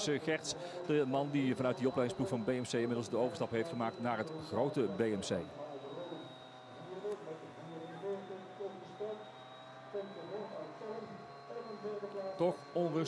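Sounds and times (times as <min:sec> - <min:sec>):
thin high tone: 0:00.0 - 0:13.0.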